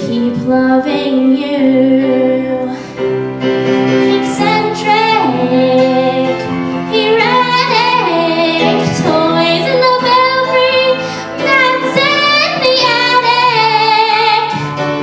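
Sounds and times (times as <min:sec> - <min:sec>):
girl singing into a microphone: 0:00.0 - 0:02.9, 0:04.1 - 0:14.8
instrumental accompaniment: 0:00.0 - 0:15.0.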